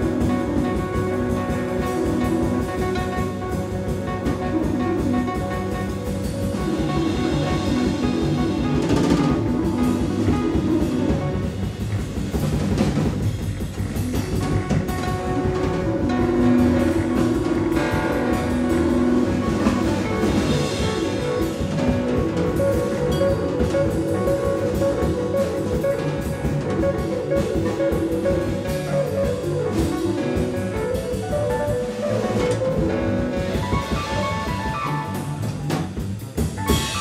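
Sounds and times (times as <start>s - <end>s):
drum kit: 0.0s - 37.0s
jazz piano: 0.0s - 37.0s
plucked double bass: 0.0s - 37.0s.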